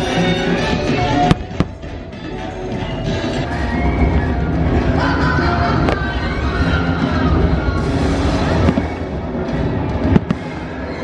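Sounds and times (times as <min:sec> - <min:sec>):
show music: 0:00.0 - 0:11.0
fireworks bursting: 0:08.0 - 0:11.0.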